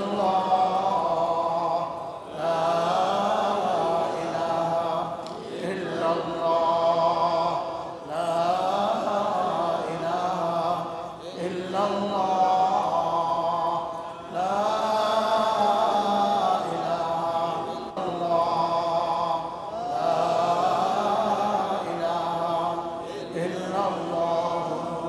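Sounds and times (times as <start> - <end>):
man chanting: 0.0 - 25.0.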